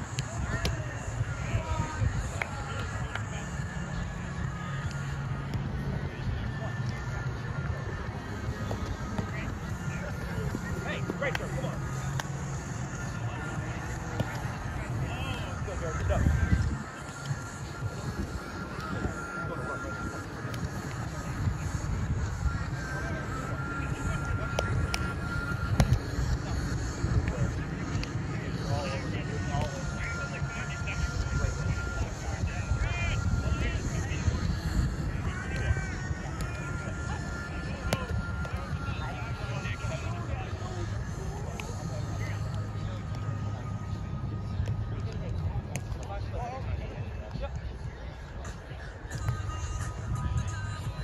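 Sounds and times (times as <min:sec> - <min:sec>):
background music: 0:00.0 - 0:51.0
distant voices: 0:00.0 - 0:51.0
wind on microphone: 0:16.0 - 0:24.9.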